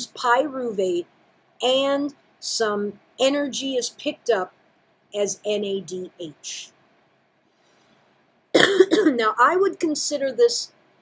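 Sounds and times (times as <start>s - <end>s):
person coughing: 8.6s - 9.2s.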